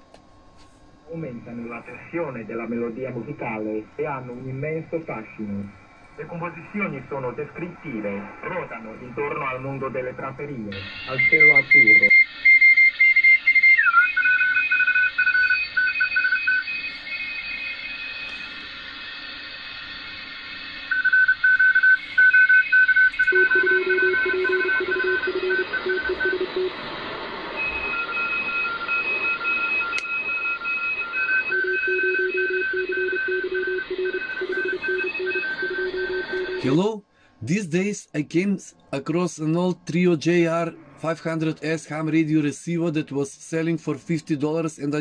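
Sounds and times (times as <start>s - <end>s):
receiver background hiss: 0.0s - 45.0s
morse code beeps: 11.0s - 12.1s, 21.0s - 26.7s, 27.6s - 36.8s.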